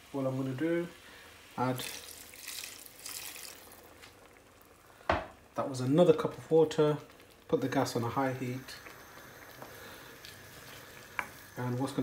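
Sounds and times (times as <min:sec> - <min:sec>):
water pouring onto vegetables: 0:01.6 - 0:04.1.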